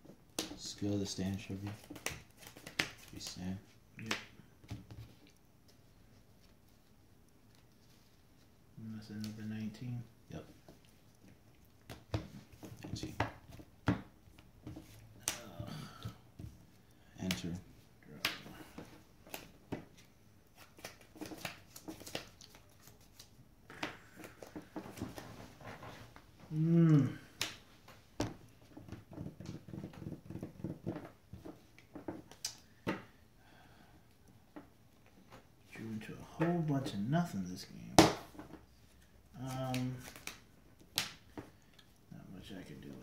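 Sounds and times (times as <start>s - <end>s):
trading cards snapping on playmat: 1.7s - 3.4s, 19.2s - 19.8s, 20.6s - 24.6s, 39.6s - 41.6s
faint voice: 26.5s - 27.2s.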